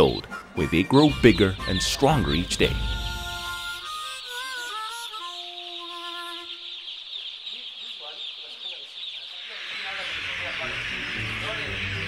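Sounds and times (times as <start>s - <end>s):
chicks peeping: 0.0s - 12.0s.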